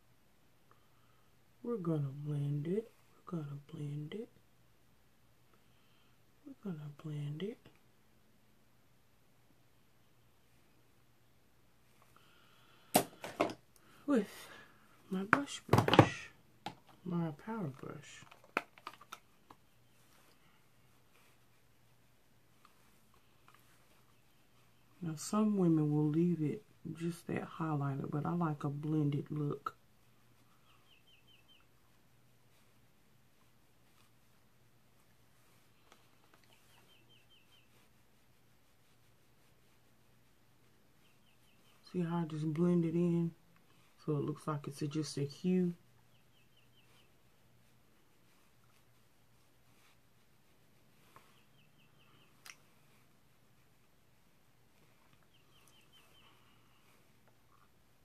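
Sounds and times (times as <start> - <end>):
bird-like chirps: 30.5 - 31.7, 36.4 - 37.8, 46.0 - 47.1, 51.1 - 52.4, 55.2 - 57.0.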